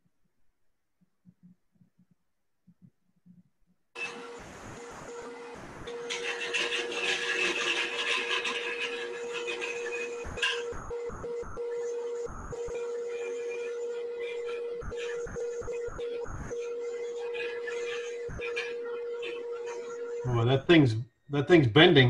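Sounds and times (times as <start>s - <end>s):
tool cutting spinning wood: 5.9s - 10.6s
wood lathe humming: 5.9s - 10.6s.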